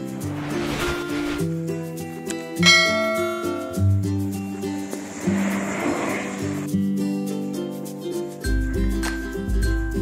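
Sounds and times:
sparklers flaring with rushing hiss: 0.0 - 1.5, 4.6 - 6.7
background music with melody: 0.0 - 10.0.

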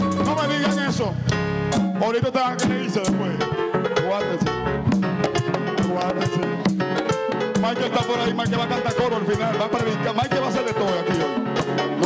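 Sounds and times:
guitar: 0.0 - 12.0
hand percussion: 0.0 - 12.0
live band playing latin music: 0.0 - 12.0.

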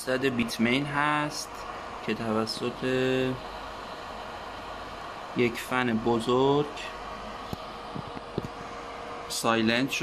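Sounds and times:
cooling fans whirring: 0.0 - 10.0.

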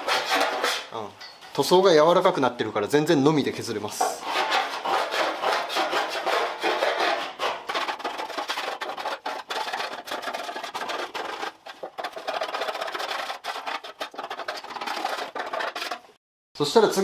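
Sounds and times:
scraping paint off metal: 0.0 - 0.9, 3.9 - 16.2.

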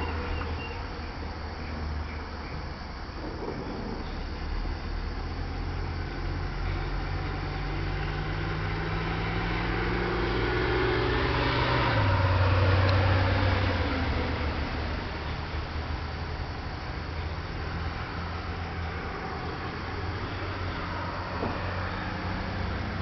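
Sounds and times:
vehicle engine humming: 0.0 - 23.0.

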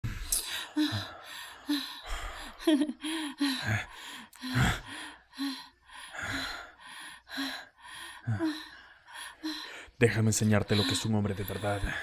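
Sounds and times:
woman gasping breathily: 0.1 - 10.0.

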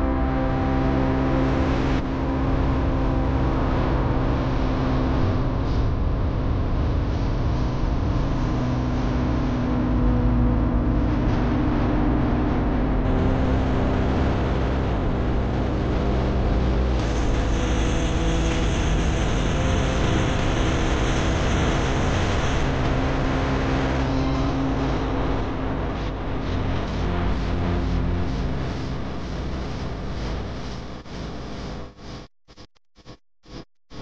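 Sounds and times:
vehicle engine running: 0.1 - 30.2
road noise: 8.1 - 26.9.

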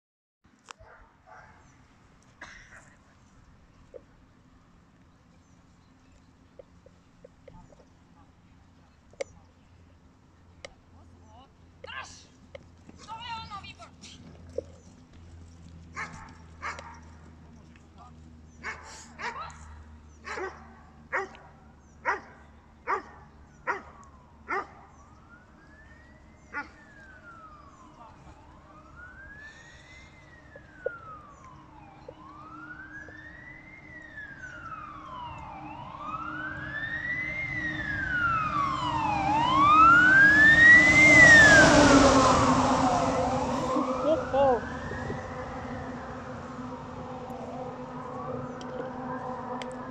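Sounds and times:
dog barking: 0.8 - 1.6, 16.0 - 17.0, 18.6 - 19.5, 20.2 - 23.9, 24.5 - 24.9
wailing emergency siren: 15.6 - 49.9.

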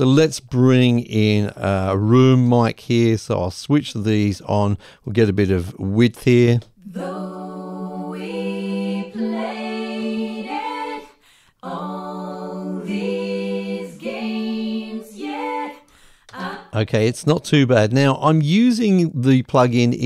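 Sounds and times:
a cappella harmony vocals: 6.8 - 17.2.

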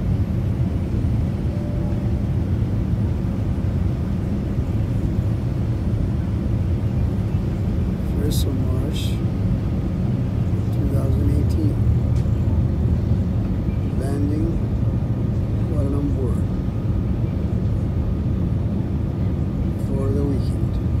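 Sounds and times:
jet cabin engine rumble: 0.0 - 21.0.

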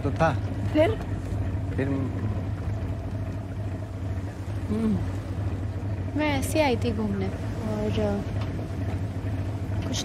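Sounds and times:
low engine rumble: 0.0 - 10.0
woman speaking: 6.1 - 8.3.

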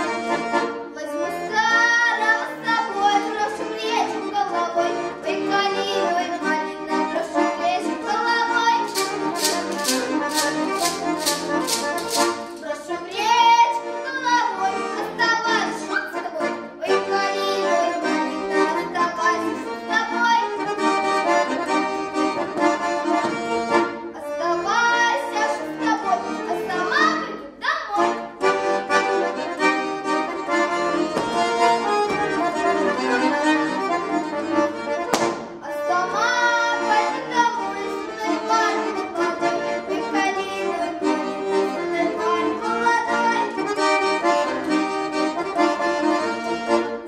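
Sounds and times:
button accordion folk tune: 0.0 - 47.0
girl singing: 0.9 - 21.3, 24.1 - 28.4, 35.6 - 44.6
wooden plate rattle clacking: 8.9 - 12.7.

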